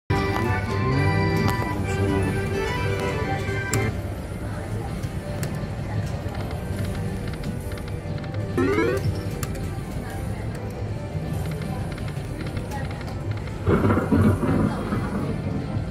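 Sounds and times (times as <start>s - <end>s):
murmur of voices: 0.1s - 15.9s
machine sounds: 6.4s - 10.0s
electronic game music jingling: 8.6s - 9.2s.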